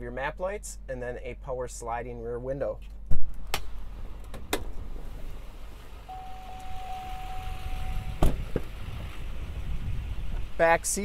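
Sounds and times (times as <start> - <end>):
window closing thump: 7.8 - 8.7.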